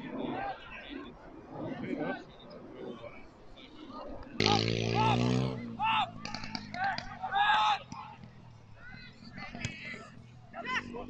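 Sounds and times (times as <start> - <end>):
footballers shouting: 4.2 - 11.0.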